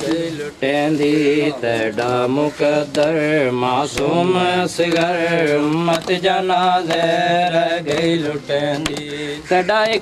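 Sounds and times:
men chanting a lament: 0:00.0 - 0:10.0.

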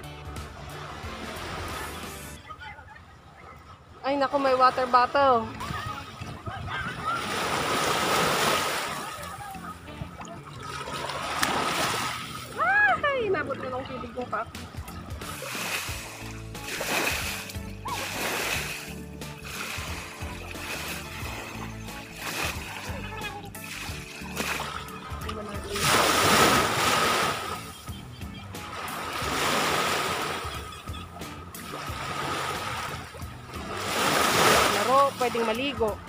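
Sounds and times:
background music: 0:00.0 - 0:02.7, 0:04.0 - 0:36.0
small waves washing on shore: 0:03.2 - 0:27.8, 0:28.6 - 0:36.0.

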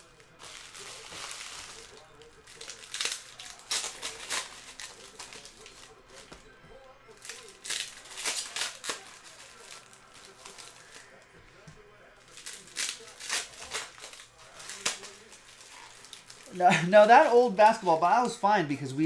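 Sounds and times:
plastic wrappers crinkling: 0:00.0 - 0:19.0
cards being handled: 0:07.1 - 0:18.4.

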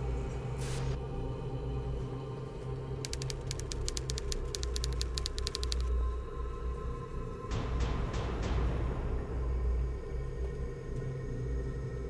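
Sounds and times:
low dark droning music: 0:00.0 - 0:12.0
fast mechanical clicks: 0:03.0 - 0:05.9.

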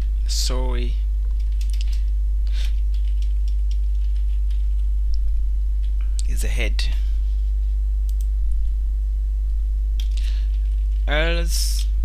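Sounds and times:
steady low hum: 0:00.0 - 0:12.0
keyboard keystrokes clicking: 0:01.4 - 0:02.0.

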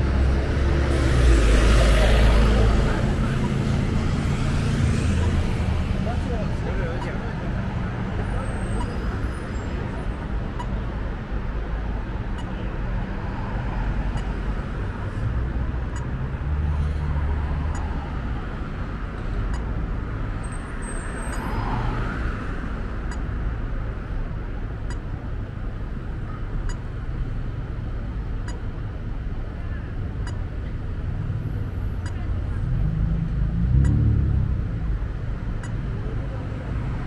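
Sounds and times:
cars passing: 0:00.0 - 0:37.0.

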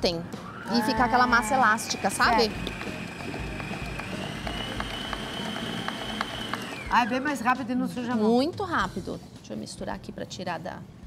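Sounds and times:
stand mixer motor whine: 0:00.4 - 0:07.2.

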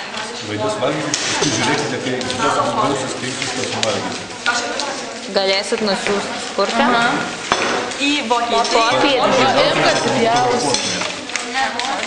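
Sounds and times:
voices talking: 0:08.0 - 0:11.8.

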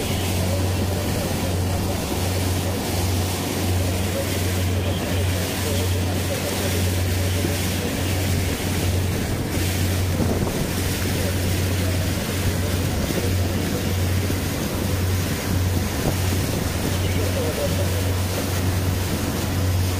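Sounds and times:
boat engine drone: 0:00.0 - 0:19.9
water rushing along hull: 0:00.0 - 0:19.9
wind buffeting microphone: 0:06.4 - 0:19.9.

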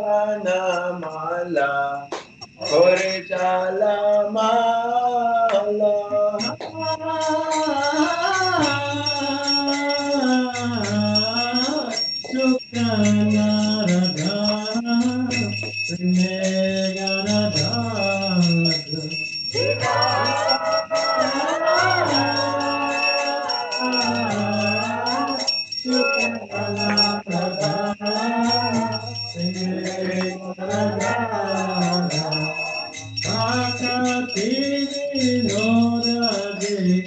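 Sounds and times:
constant high ringing: 0:00.0 - 0:37.0
person singing a chant: 0:00.0 - 0:37.0.

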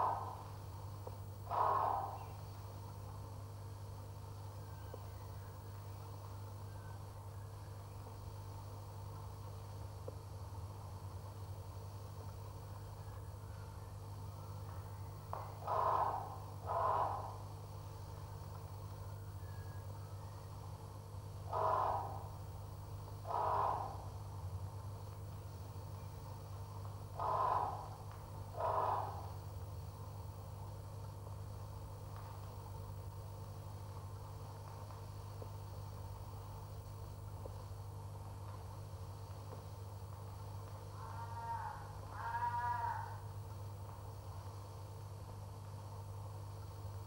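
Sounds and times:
calls: 0:00.0 - 0:00.6, 0:01.4 - 0:02.6, 0:14.4 - 0:17.5, 0:21.5 - 0:22.5, 0:23.1 - 0:24.2, 0:27.1 - 0:29.4, 0:40.9 - 0:43.2
steady low hum: 0:00.0 - 0:47.0
animal bleating: 0:21.6 - 0:22.3, 0:41.0 - 0:43.2.

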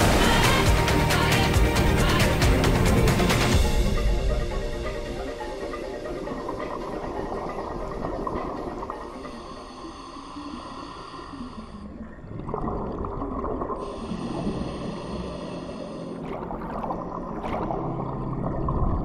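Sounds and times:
regulator hissing and bubbling: 0:00.0 - 0:19.0
underwater wash: 0:00.0 - 0:19.0.

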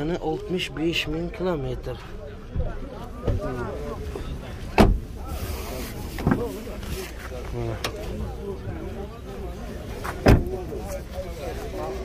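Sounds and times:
murmur of voices: 0:00.0 - 0:12.0
car door shutting: 0:04.7 - 0:05.2, 0:10.0 - 0:10.6.

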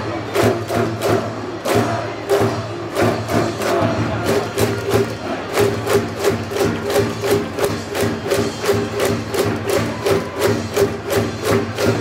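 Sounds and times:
steady drum beat: 0:00.3 - 0:12.0.

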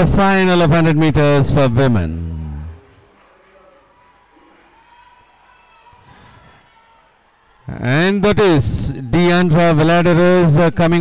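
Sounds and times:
faint distant voices: 0:02.6 - 0:09.8.

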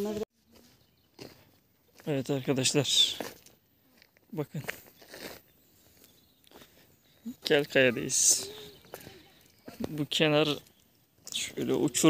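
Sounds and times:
footstep scuff on gravel: 0:03.0 - 0:06.9.

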